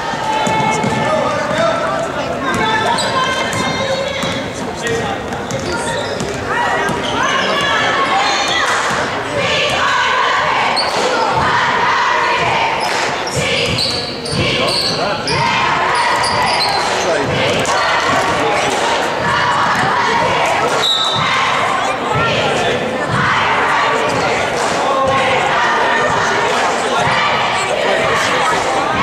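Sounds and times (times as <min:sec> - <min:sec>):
voices talking and calling out: 0:00.0 - 0:29.0.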